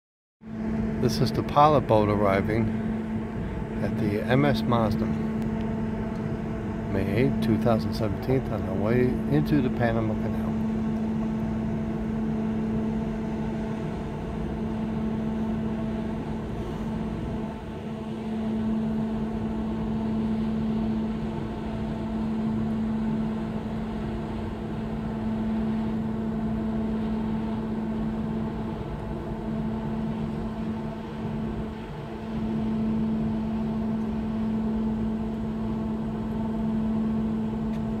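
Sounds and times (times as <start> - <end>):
ship engine machinery hum: 0.4 - 38.0.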